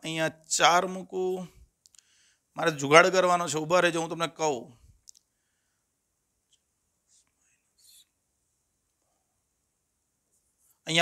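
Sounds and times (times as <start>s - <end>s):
faint whispered muttering: 7.0s - 8.2s.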